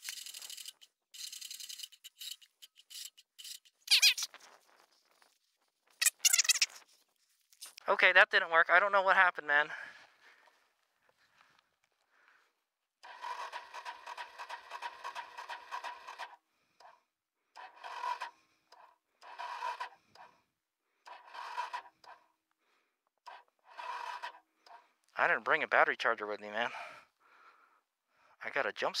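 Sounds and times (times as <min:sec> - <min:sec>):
electric starter cranking engine: 0:00.0 - 0:03.6, 0:13.0 - 0:16.4, 0:17.6 - 0:20.3, 0:21.1 - 0:22.2, 0:23.3 - 0:24.4.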